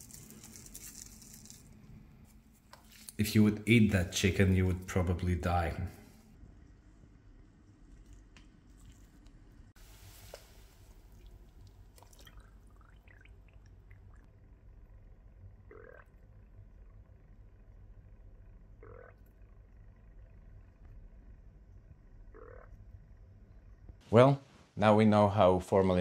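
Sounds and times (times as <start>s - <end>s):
faint bubbling gurgles: 9.8s - 14.3s, 15.5s - 22.8s.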